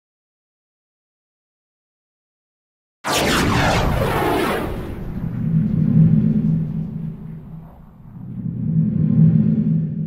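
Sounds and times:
bright whooshing burst: 3.1s - 8.7s
low droning hum: 3.6s - 10.0s.

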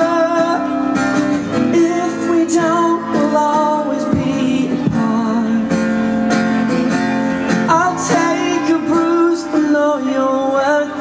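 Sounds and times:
man singing: 0.0s - 6.0s, 7.5s - 11.0s
acoustic guitar strummed: 0.0s - 11.0s.

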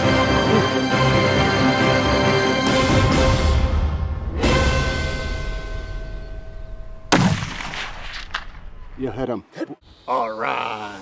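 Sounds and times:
held notes of background music: 0.0s - 6.8s
rifle shot echoing: 7.1s - 9.0s
faint crack: 7.4s - 8.9s.

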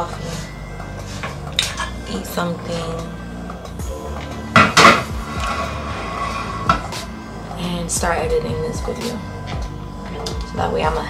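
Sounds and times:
dishes and cutlery clattering: 1.2s - 2.0s.

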